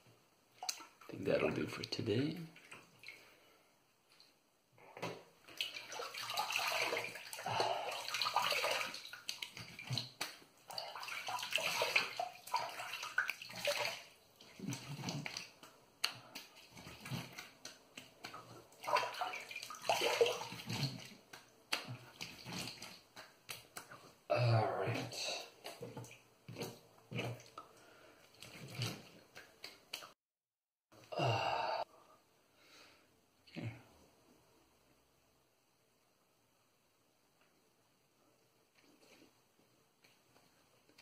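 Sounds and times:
water splashing at a sink: 0:05.4 - 0:24.1, 0:28.2 - 0:30.2.

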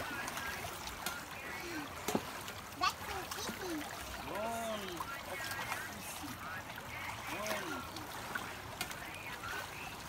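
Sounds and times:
stream water splashing: 0:00.0 - 0:10.0.

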